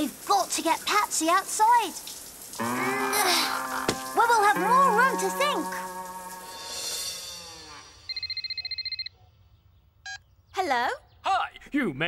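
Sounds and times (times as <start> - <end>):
telephone ringing: 8.1 - 9.1.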